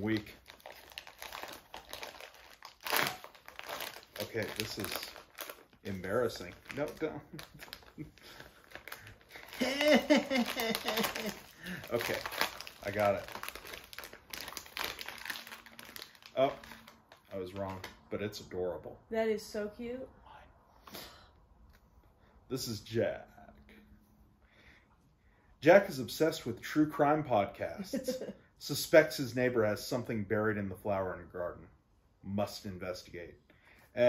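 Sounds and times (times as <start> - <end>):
foil bag crackling: 0.0 - 18.0
plastic packaging crinkling: 0.0 - 18.0.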